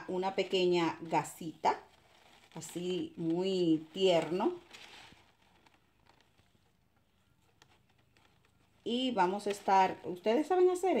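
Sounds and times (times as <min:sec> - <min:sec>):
fabric rustling: 0:00.0 - 0:11.0
small handling ticks: 0:01.8 - 0:10.6.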